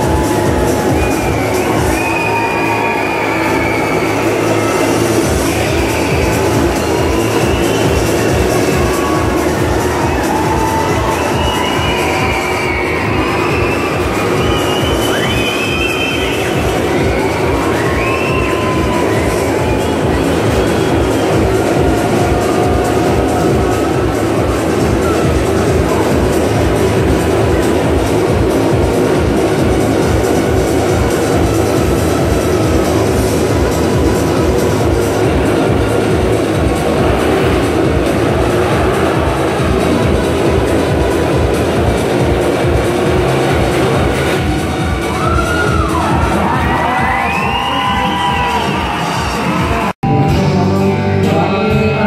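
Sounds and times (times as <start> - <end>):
motorcycle engines revving: 0.0 - 47.6
loud music: 0.0 - 52.0.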